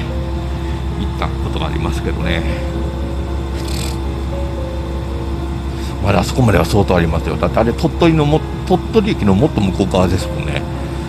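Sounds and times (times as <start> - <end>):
background music: 0.0 - 11.0
train carriage low hum: 0.0 - 11.0.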